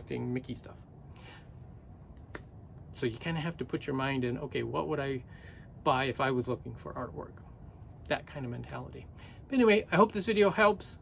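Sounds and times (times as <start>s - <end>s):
soft hiss: 0.0s - 11.0s.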